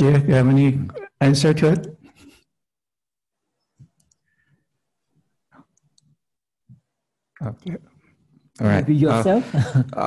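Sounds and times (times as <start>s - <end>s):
faint clicks: 3.8s - 4.3s, 5.6s - 6.2s.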